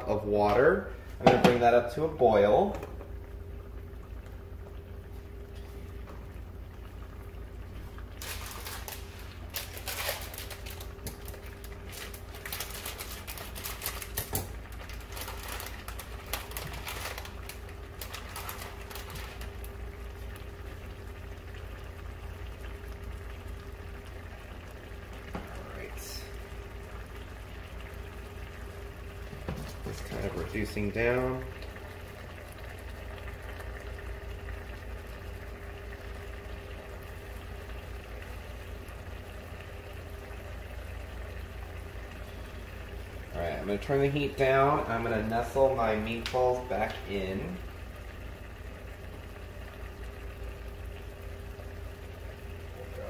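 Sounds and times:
steady low hum: 0.0s - 53.0s
sauce bubbles popping: 2.7s - 53.0s.

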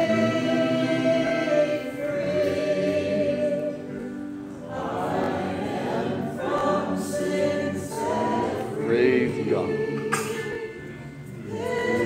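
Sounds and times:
choir singing gospel song: 0.0s - 12.0s.

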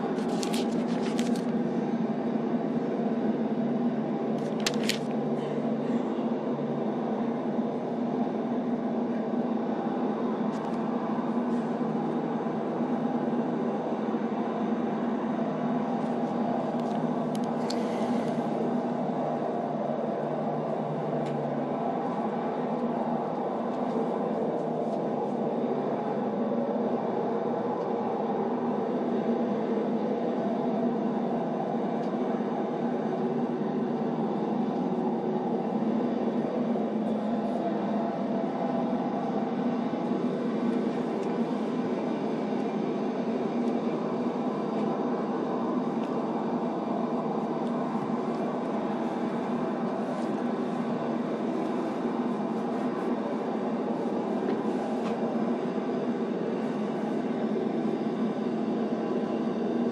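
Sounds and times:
traffic rumble and hum: 0.0s - 59.9s.

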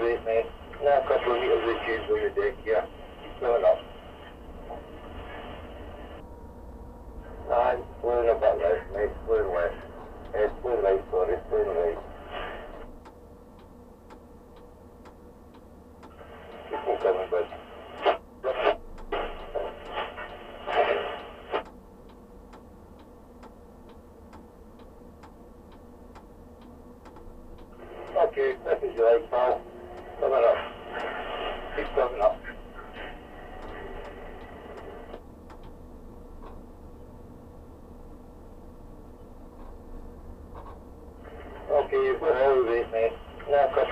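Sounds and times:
man talking over two-way radio: 0.0s - 3.9s, 7.4s - 12.1s, 16.6s - 18.8s, 27.8s - 33.2s, 41.3s - 43.9s
steady low hum: 0.0s - 43.9s.

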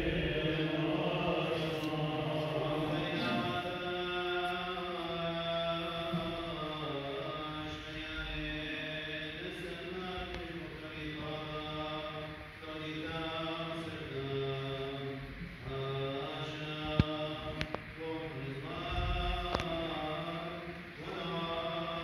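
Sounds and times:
liturgical chanting: 0.0s - 22.0s.

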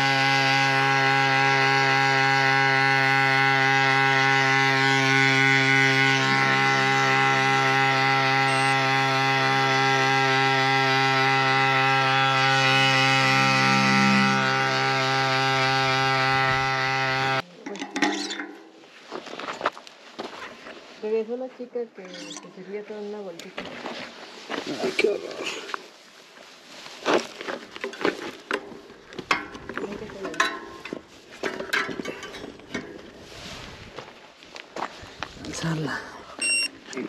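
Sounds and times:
electric tyre pump buzzing: 0.0s - 17.4s.

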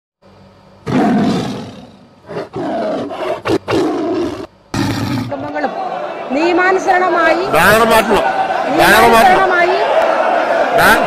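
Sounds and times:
big cat roaring: 0.8s - 5.5s.

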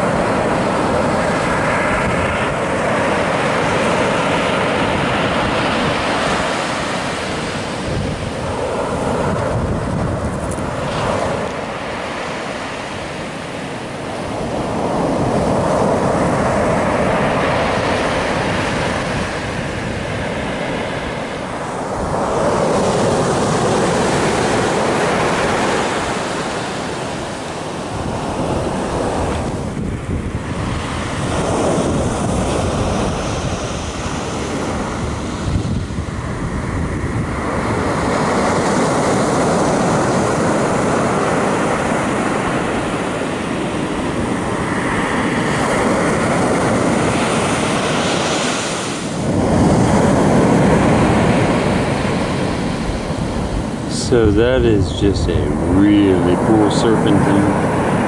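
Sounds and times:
ocean surf washing on beach: 0.0s - 58.0s
wind gusting on microphone: 0.0s - 58.0s.

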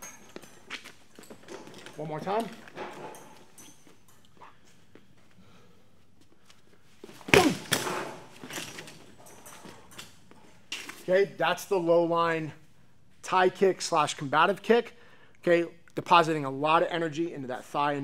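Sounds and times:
shin kick smacking training dummy: 7.2s - 8.3s.

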